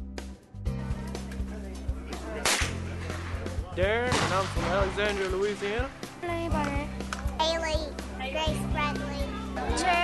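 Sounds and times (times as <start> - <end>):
background music: 0.0 - 10.0
rifle shot: 2.4 - 2.8, 4.1 - 5.4.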